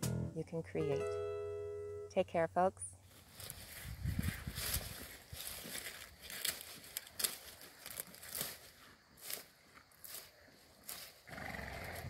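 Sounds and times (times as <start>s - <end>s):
cow crunching corn stalks: 3.2s - 12.0s.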